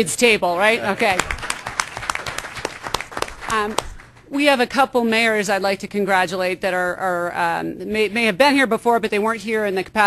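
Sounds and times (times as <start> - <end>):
people clapping: 0.8 - 4.3.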